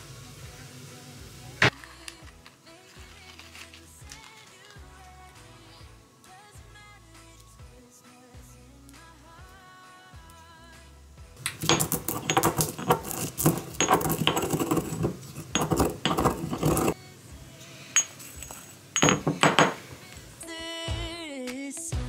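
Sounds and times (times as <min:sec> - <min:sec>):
pestle grinding in stone mortar: 0:11.4 - 0:17.0.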